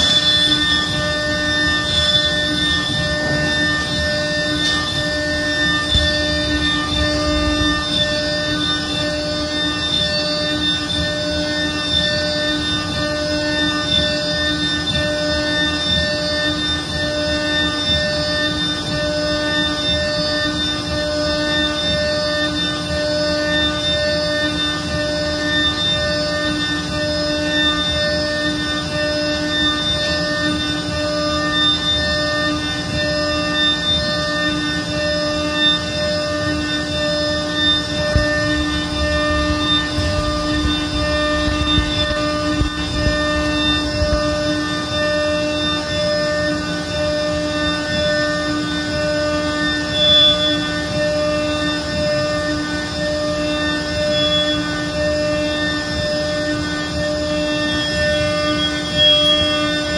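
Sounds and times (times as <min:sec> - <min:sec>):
milling spindle whine: 0:00.0 - 0:59.9.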